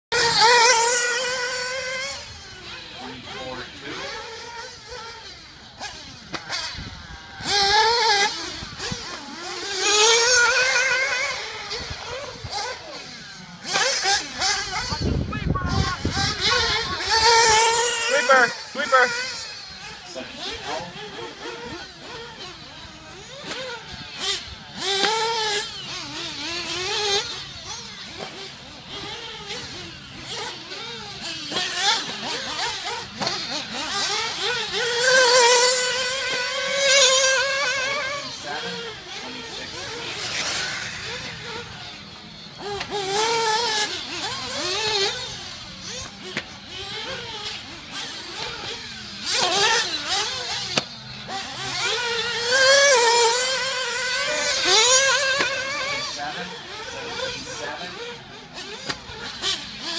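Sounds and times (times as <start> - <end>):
rc car engines revving: 0.0 - 59.9.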